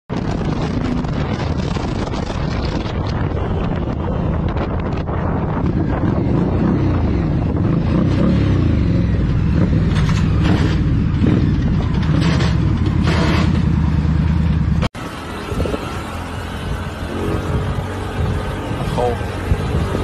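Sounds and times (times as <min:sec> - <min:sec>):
motorcycle engine at speed: 0:00.1 - 0:20.0
road and wind noise: 0:00.1 - 0:20.0.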